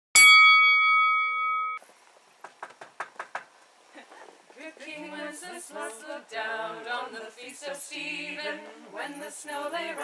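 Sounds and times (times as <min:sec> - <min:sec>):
bell-like ding: 0:00.2 - 0:01.8.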